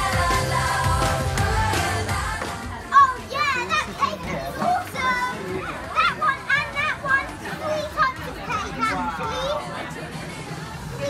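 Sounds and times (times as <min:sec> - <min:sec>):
pop song with singing: 0:00.0 - 0:06.0, 0:07.1 - 0:11.0
children's excited voices and shouts: 0:02.7 - 0:11.0.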